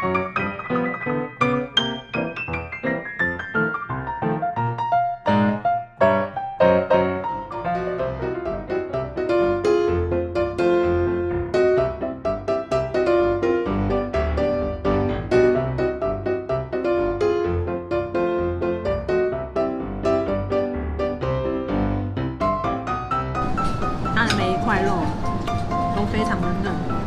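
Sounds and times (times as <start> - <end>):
piano background music: 0.0 - 27.0.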